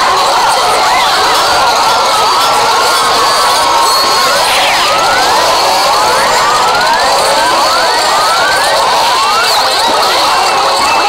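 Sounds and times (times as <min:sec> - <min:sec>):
short rising pitch sweeps: 0:03.6 - 0:08.6.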